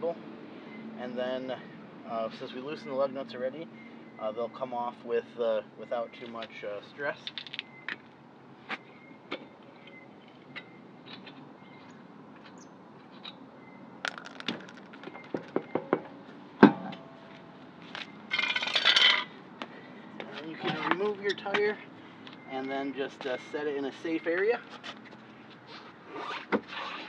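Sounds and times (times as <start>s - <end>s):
metal lug nuts clinking: 18.3s - 19.4s.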